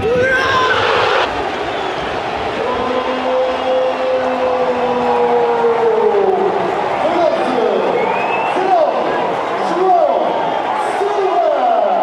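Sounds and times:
commentator calling a goal: 0.0 - 1.3, 2.5 - 12.0
stadium crowd noise: 0.0 - 12.0.

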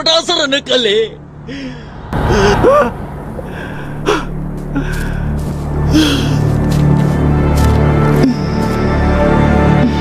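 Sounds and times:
low drone of background music: 1.2 - 10.0
person gasping: 3.5 - 6.5.

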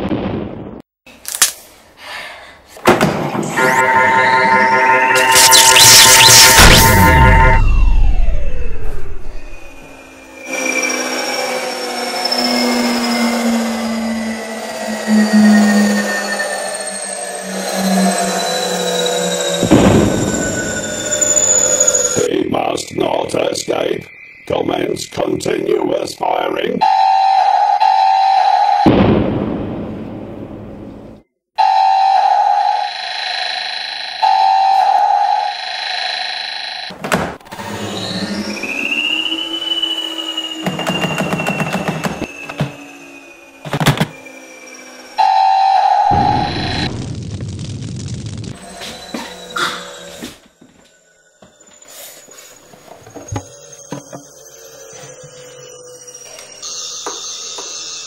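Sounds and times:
bursts of noise: 3.4 - 10.7
pitch sweep: 3.4 - 22.3
buzzing electronic zap: 3.5 - 11.1.

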